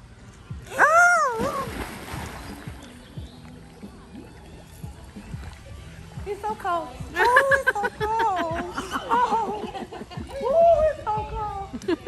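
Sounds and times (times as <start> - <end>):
splash into swimming pool: 1.1 - 2.9.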